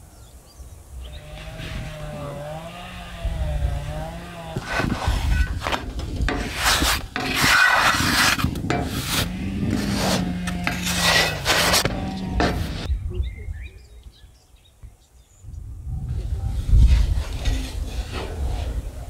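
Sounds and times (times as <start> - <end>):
wooden spatula scraping on griddle: 1.2 - 3.0, 3.6 - 12.9, 16.7 - 19.0.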